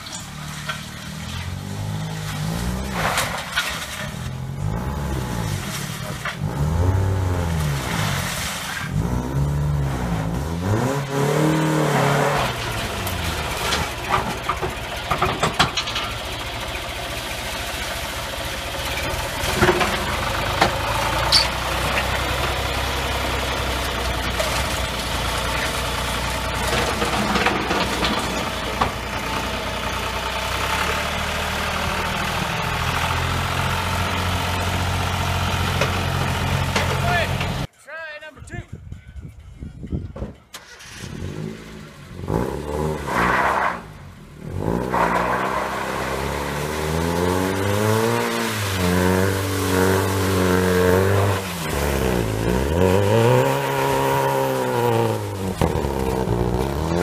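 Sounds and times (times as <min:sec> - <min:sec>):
engine revving: 0:00.0 - 0:37.7, 0:40.6 - 0:57.0
tractor engine droning: 0:00.0 - 0:37.7, 0:39.3 - 0:57.0
sharp metallic clanks: 0:19.4 - 0:22.3.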